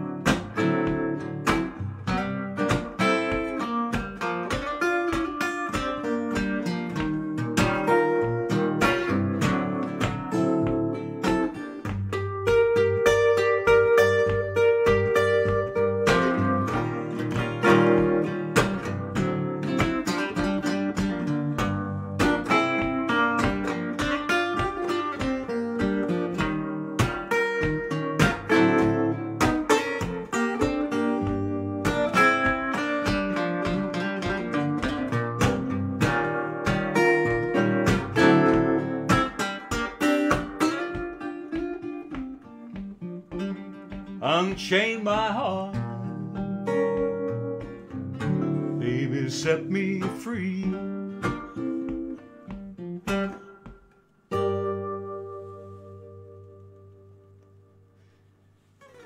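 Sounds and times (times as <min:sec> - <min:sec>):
blues guitar picking and strumming: 0:00.0 - 0:59.0.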